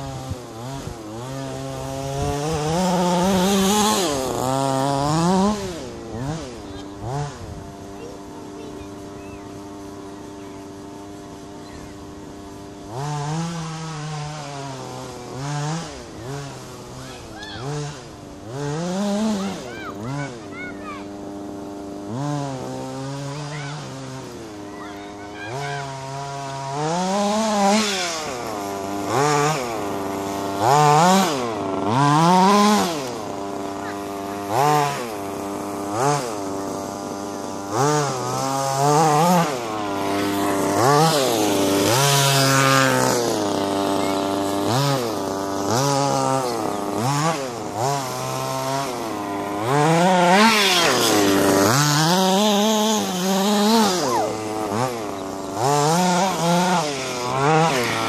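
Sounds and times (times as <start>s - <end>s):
small nitro engine revving: 0.0s - 58.0s.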